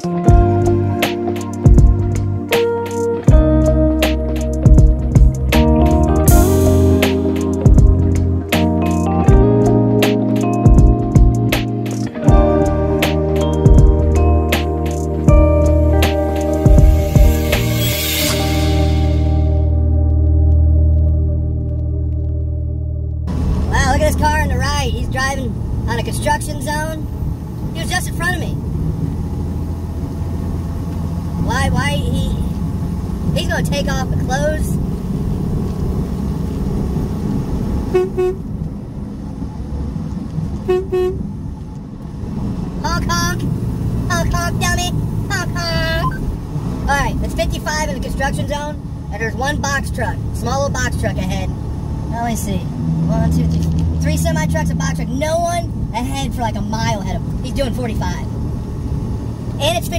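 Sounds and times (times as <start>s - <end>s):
road noise: 0.0s - 59.9s
truck engine drone: 0.0s - 59.9s
truck horn toots: 37.8s - 38.5s, 40.6s - 41.3s.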